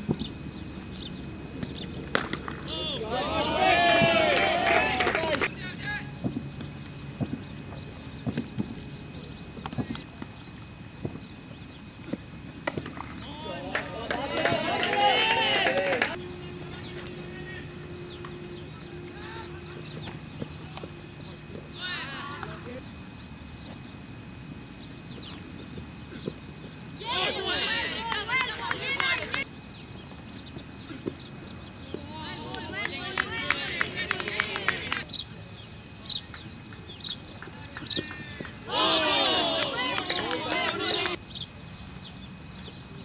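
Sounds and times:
low outdoor hum: 0.0 - 43.0
player shouting a call: 2.6 - 6.2, 13.2 - 20.0, 27.0 - 29.4, 31.9 - 35.0, 38.0 - 41.2.

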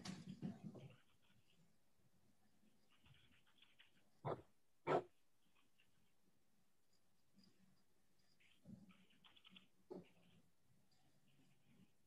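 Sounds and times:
dog barking: 4.2 - 5.1.

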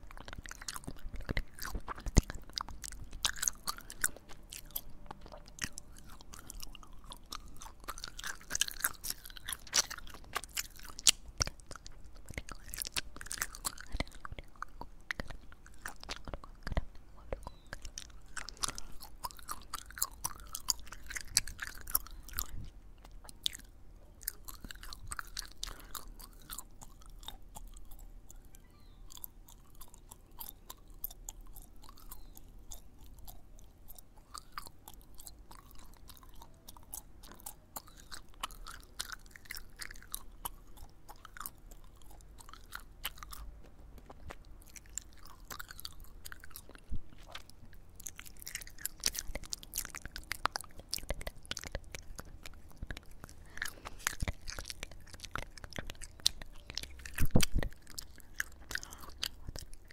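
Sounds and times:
gum chewing mouth smacks: 0.0 - 59.9.

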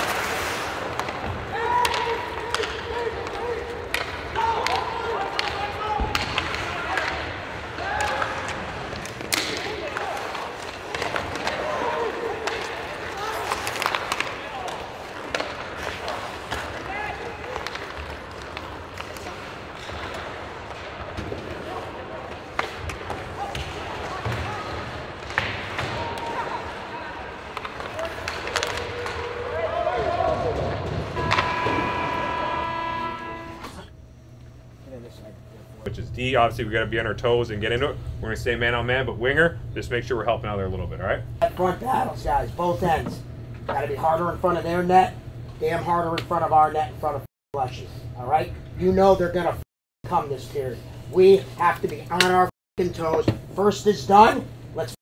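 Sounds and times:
hockey sticks clacking on puck: 0.8 - 26.6, 27.4 - 29.6
players shouting: 1.3 - 18.2, 21.4 - 33.8.

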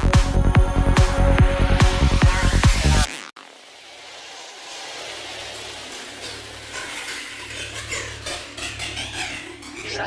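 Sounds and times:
hissing noise texture: 2.5 - 10.0
voice sample: 9.6 - 10.0.

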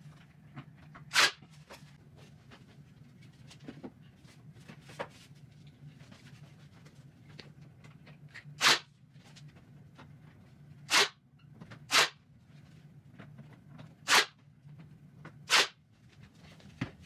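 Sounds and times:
nail gun firing into wood: 1.1 - 1.4, 8.6 - 8.9, 10.9 - 11.2, 11.9 - 12.2, 14.1 - 14.3, 15.5 - 15.8.

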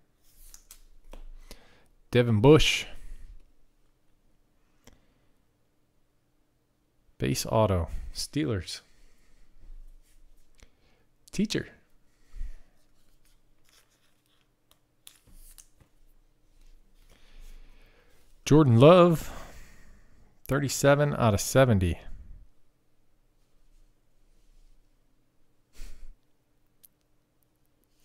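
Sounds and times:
trading cards rustling on a mat: 0.2 - 1.4, 12.8 - 18.3.

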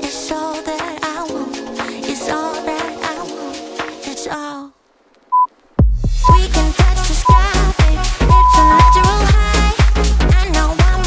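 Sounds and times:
workout background music: 6.2 - 11.0
high electronic timer beep: 7.3 - 7.5, 8.3 - 9.1.

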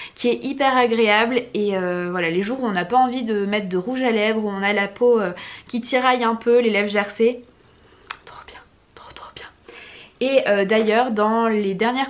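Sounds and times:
woman whispering mouth sounds: 8.0 - 9.6.

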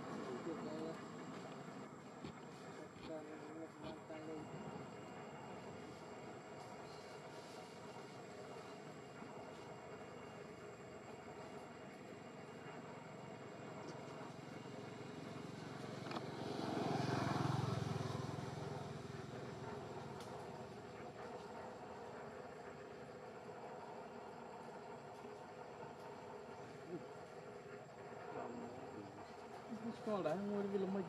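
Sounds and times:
faint outdoor background noise: 0.0 - 31.0
distant vehicle passing: 15.0 - 20.9.

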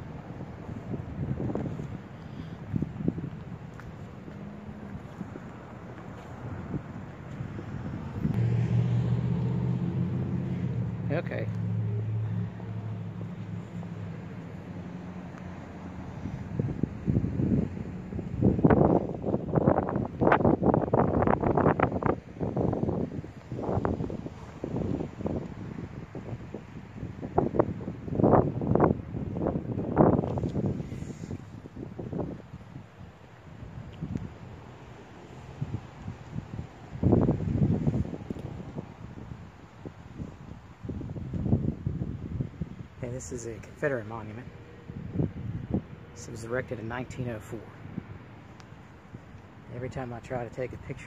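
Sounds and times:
wind buffeting microphone: 0.0 - 51.0.

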